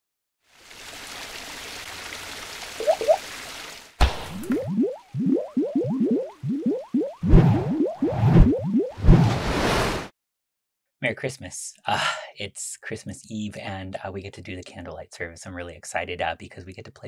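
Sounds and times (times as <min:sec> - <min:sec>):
rising bloops: 0:02.8 - 0:03.2, 0:04.3 - 0:09.3
cartoon splat: 0:04.0 - 0:04.7.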